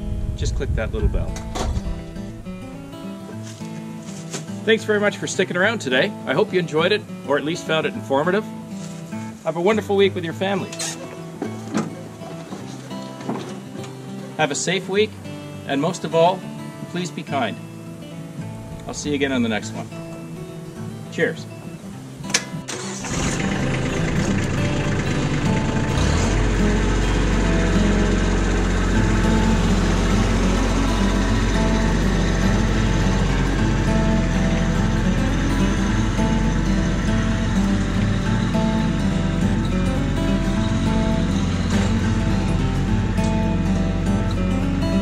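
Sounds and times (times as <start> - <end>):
acoustic guitar music: 0.0 - 45.0
diesel tractor engine: 22.3 - 45.0.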